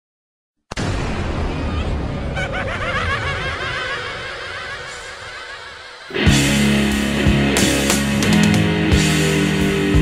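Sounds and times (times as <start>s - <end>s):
low rumble: 0.8s - 7.5s
high cackling laugh: 1.8s - 6.2s.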